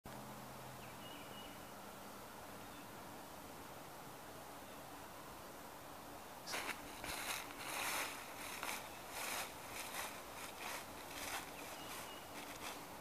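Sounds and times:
footsteps crunching dry leaves: 0:06.5 - 0:13.0.

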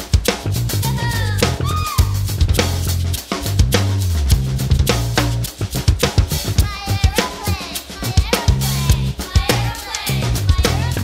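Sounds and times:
drum kit playing a groove: 0:00.0 - 0:11.0
funk-rock backing track: 0:00.0 - 0:11.0
bass guitar line: 0:00.4 - 0:11.0.

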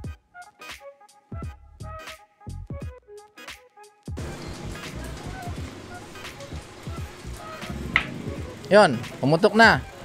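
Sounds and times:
tire bead popping onto rim: 0:07.9 - 0:08.4.

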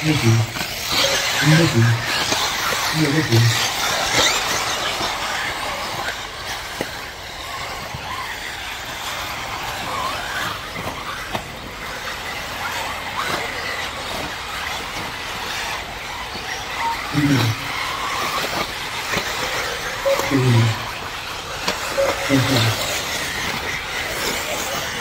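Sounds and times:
rc car motors whining: 0:00.0 - 0:25.0.

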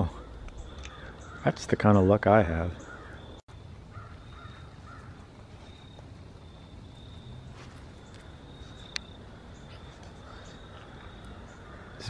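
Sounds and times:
distant crow caws: 0:00.0 - 0:01.6, 0:02.8 - 0:05.3, 0:08.0 - 0:12.0.

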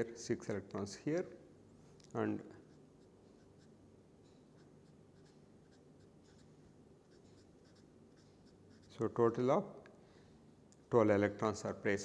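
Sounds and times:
low steady hum: 0:00.0 - 0:12.0
marker scratching on paper: 0:02.5 - 0:09.2.

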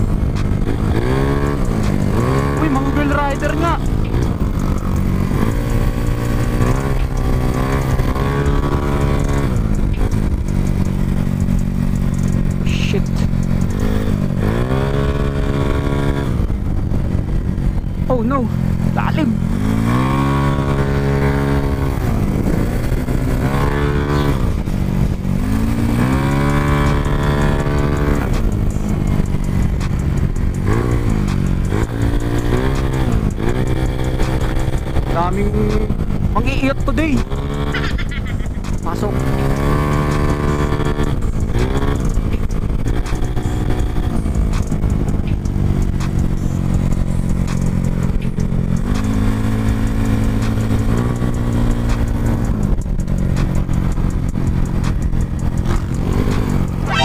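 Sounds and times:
scooter engine revving: 0:00.0 - 0:57.0
wind and road noise: 0:00.0 - 0:57.0.

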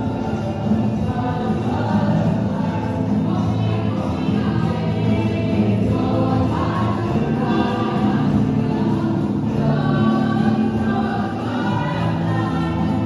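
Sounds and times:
choir singing held chords: 0:00.0 - 0:13.0.

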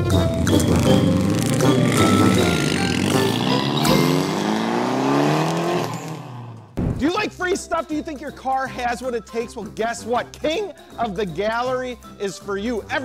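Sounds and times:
background music: 0:00.0 - 0:06.0, 0:06.8 - 0:13.0
car engine revving: 0:00.0 - 0:06.8.

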